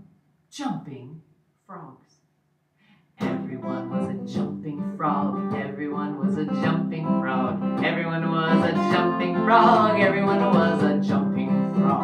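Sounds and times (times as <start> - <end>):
acoustic guitar strummed: 3.2 - 12.0.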